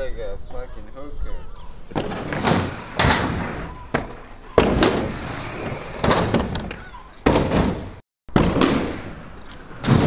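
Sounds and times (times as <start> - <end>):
skate wheels rolling: 1.9 - 7.1, 8.5 - 10.0.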